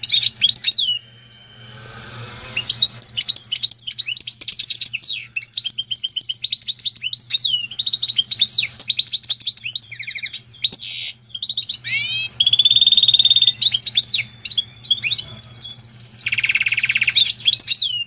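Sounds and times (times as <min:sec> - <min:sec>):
bird singing twittering song: 0:00.0 - 0:01.8, 0:02.4 - 0:18.0.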